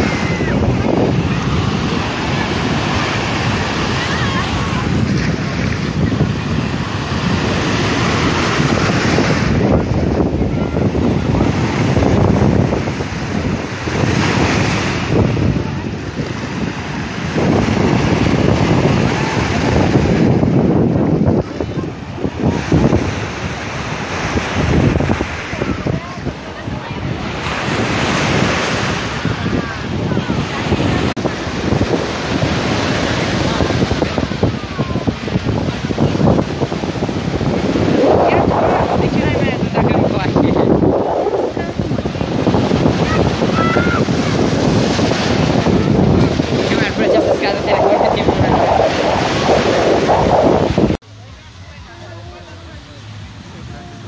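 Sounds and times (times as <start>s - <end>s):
wind buffeting microphone: 0.0s - 51.0s
surf breaking on sand: 0.0s - 54.0s.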